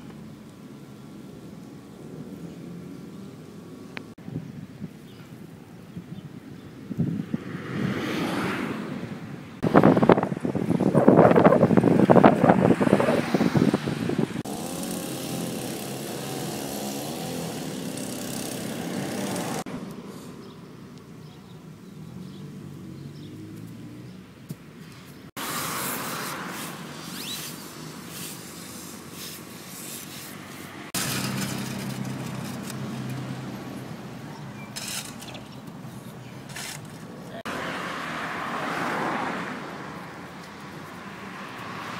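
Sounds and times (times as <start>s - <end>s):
road traffic engines: 0.0s - 41.9s.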